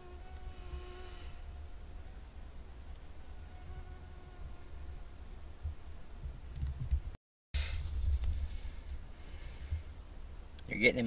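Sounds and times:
flying insect whine: 0.0s - 1.5s.

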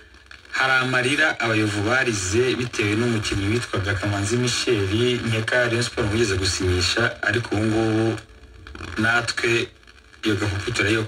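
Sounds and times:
person talking over radio: 0.5s - 8.2s, 9.0s - 11.0s.

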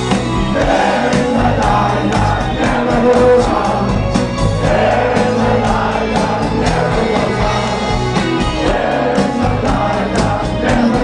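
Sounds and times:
crowd singing together: 0.0s - 11.0s
drum beat: 0.0s - 11.0s
live rock band playing: 0.0s - 11.0s.

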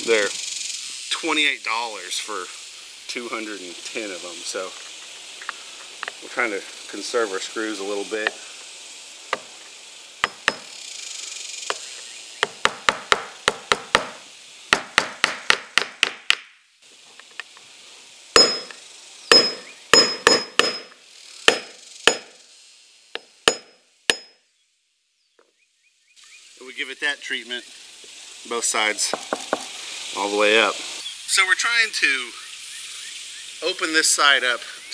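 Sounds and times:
hammer driving nails into wood: 12.4s - 14.2s, 14.8s - 16.5s, 18.4s - 20.9s, 21.5s - 22.3s
high metallic ring: 18.4s - 21.0s.

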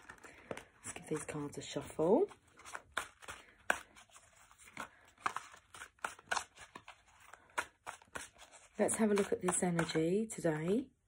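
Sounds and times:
cards being shuffled: 0.0s - 10.1s.

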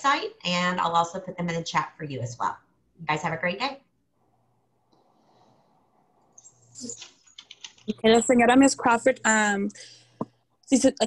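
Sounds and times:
computer keyboard typing: 6.4s - 8.0s
person speaking: 6.5s - 11.0s.

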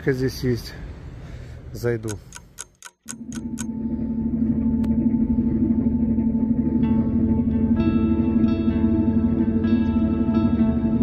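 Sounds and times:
clock ticking: 2.0s - 3.7s
sharp click: 2.0s - 3.7s
low steady drone: 3.1s - 11.0s.

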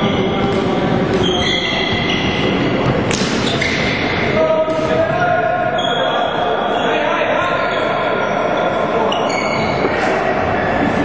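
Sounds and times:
players' voices echoing: 0.0s - 11.0s
ball and sticks hitting: 0.4s - 2.1s, 2.8s - 5.1s
shoes squeaking on floor: 1.2s - 4.1s, 8.5s - 10.0s.

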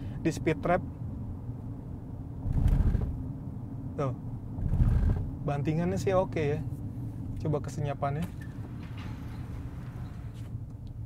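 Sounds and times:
tyres rumbling on road: 2.3s - 5.7s
car wheels thumping over speed bump: 2.5s - 3.2s.

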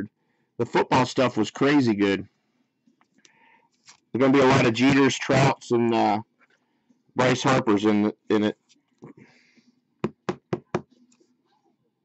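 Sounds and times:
sharp knocks on plastic: 10.0s - 10.9s.

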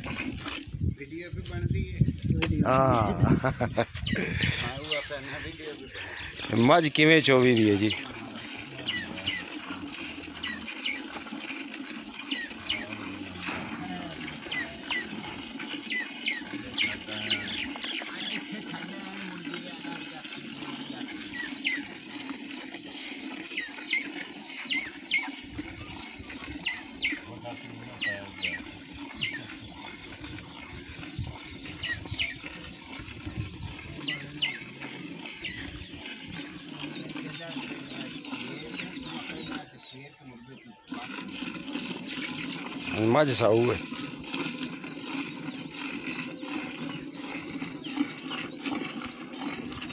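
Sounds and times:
milk squirting into steel bucket: 0.0s - 40.1s, 40.8s - 49.9s.

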